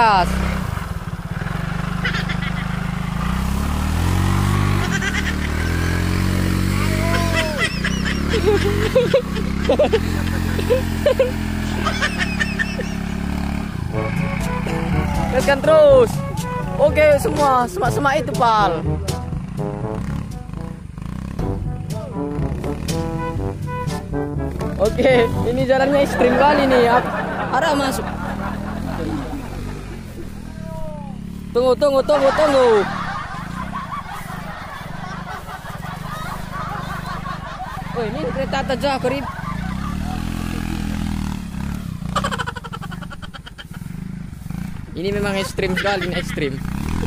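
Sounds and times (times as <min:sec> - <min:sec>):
scooter engine rumble: 0:00.0 - 0:47.0.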